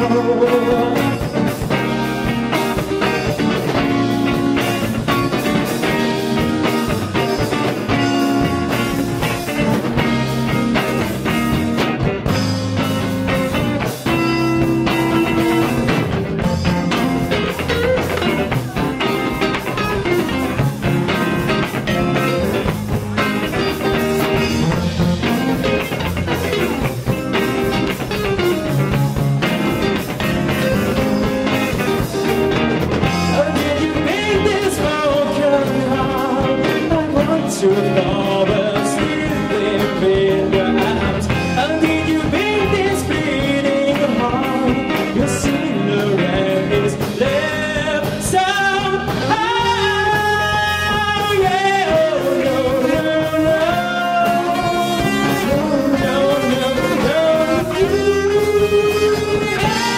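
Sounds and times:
live rock band instrumental: 0.0s - 59.9s.

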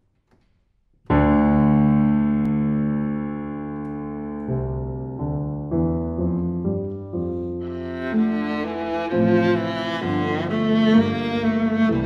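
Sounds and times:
grand piano chord: 1.1s - 12.0s.

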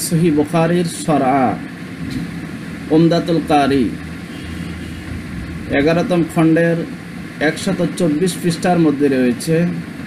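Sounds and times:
man speaking: 0.0s - 1.7s, 2.9s - 4.0s, 5.7s - 9.8s
low background hum: 0.0s - 10.0s.

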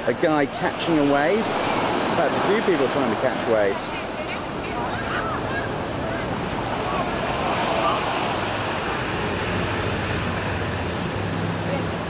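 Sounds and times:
low hum of road traffic: 0.0s - 12.0s
ocean surf: 0.0s - 12.0s
wind: 0.0s - 12.0s.

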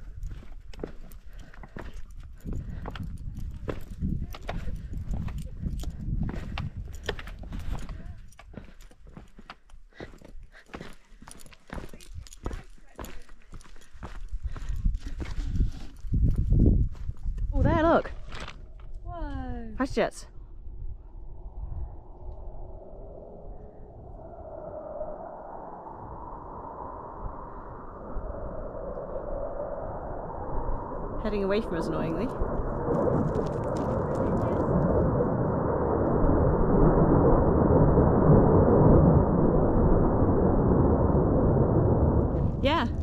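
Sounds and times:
wind rumbling on microphone: 0.0s - 43.0s
footsteps on loose rocks: 0.2s - 17.3s.

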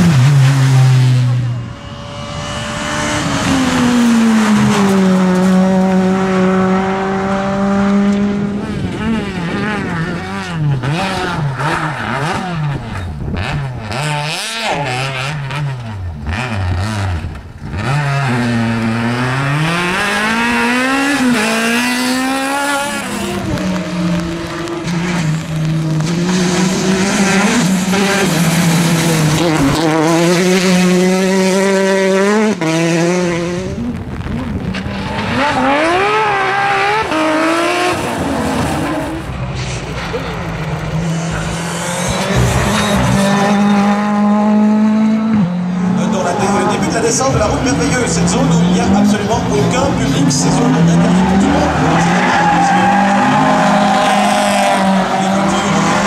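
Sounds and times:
rally car engines at full throttle: 0.0s - 56.0s.

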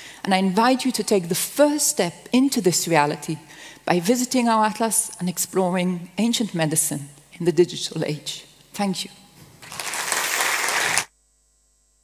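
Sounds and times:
audience applauding: 9.6s - 11.1s.

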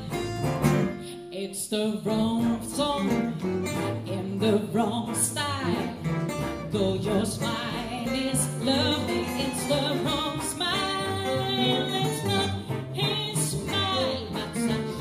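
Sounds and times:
rhythm guitars: 0.0s - 1.1s
walking double bass: 0.0s - 1.1s, 1.8s - 15.0s
woman singing: 1.1s - 15.0s
bowed violin: 2.2s - 15.0s.

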